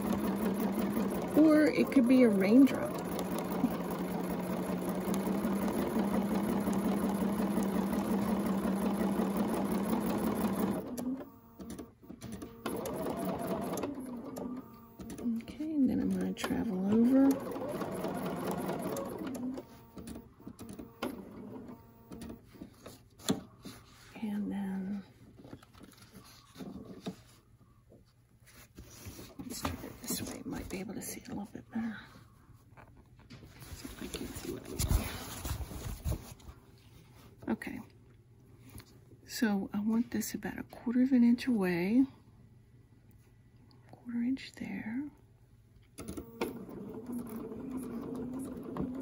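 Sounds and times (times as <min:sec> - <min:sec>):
sewing machine stitching: 0:00.0 - 0:22.9, 0:46.0 - 0:49.0.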